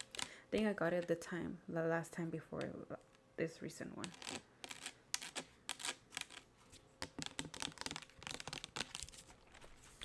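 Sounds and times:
nails tapping on plastic bottle: 7.0s - 8.9s.

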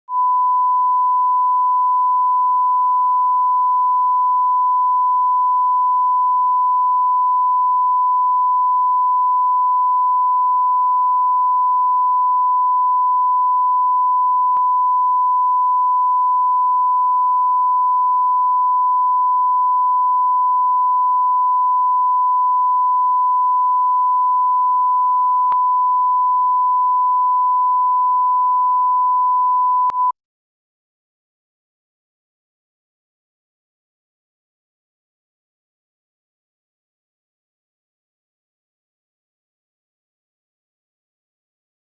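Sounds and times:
steady reference tone beep: 0.1s - 30.2s.

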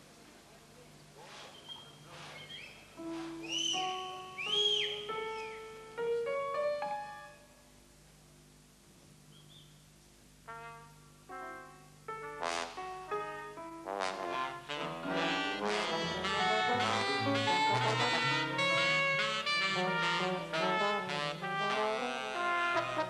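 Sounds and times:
brass section: 10.4s - 11.4s, 12.2s - 23.0s
jazz big band playing: 10.5s - 23.0s.

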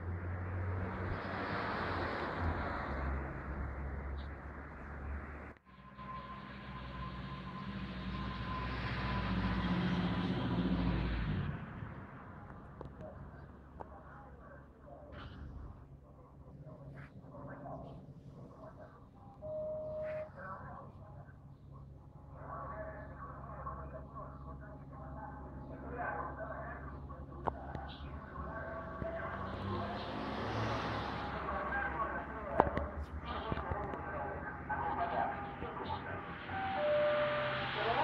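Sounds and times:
light aircraft engine overhead: 20.3s - 36.4s
steady high tone: 36.5s - 38.0s.

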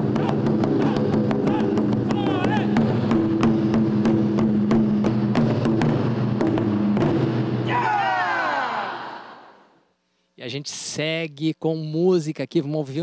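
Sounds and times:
drums struck with sticks: 0.0s - 7.8s.

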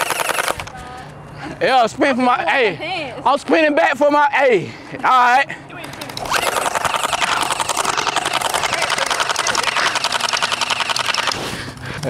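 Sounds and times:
gel-ball blaster firing full-auto: 0.0s - 0.6s, 6.1s - 11.5s.

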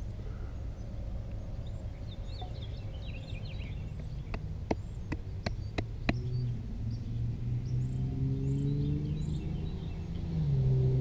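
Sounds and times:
small birds chirping: 0.0s - 10.3s.

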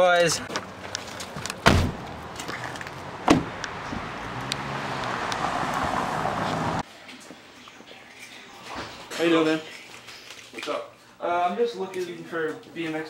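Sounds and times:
street traffic noise: 0.0s - 8.4s
car door shutting: 1.6s - 2.1s, 3.2s - 4.1s.

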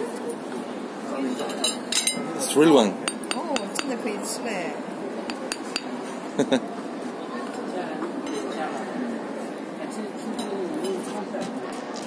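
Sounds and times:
background chatter: 0.0s - 12.0s
spoon clinking on porcelain: 3.1s - 4.0s, 5.3s - 6.0s.

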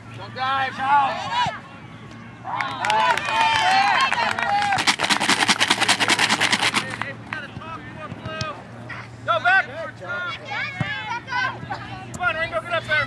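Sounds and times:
rapid hand clapping: 4.1s - 7.1s.

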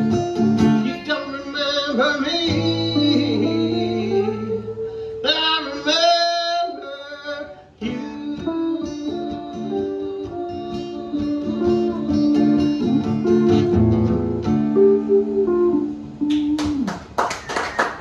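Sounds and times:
electric and acoustic guitars: 0.0s - 18.0s
people clapping: 16.3s - 18.0s.

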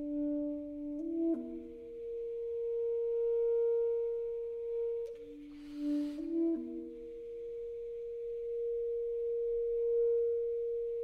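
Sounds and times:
saxophone long note: 2.9s - 9.1s.

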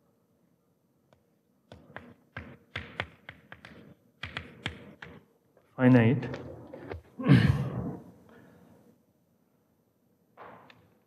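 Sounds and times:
chalk writing on blackboard: 1.8s - 5.3s.

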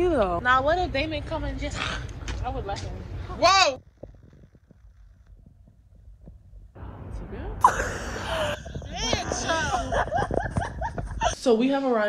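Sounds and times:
faint low rumble: 0.0s - 11.4s
phone microphone handling noise: 3.6s - 6.8s, 8.3s - 11.3s.

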